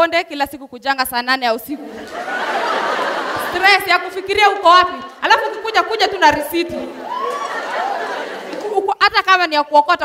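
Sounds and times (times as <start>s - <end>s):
studio audience laughing: 1.8s - 4.2s, 6.9s - 8.8s.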